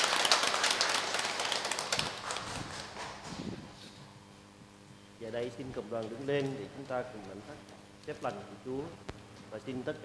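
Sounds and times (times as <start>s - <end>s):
congregation applauding: 0.0s - 3.1s.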